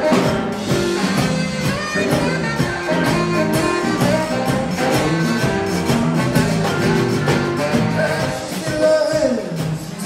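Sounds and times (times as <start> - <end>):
tenor saxophone solo: 0.0 - 8.5
live band playing a steady beat: 0.0 - 10.0.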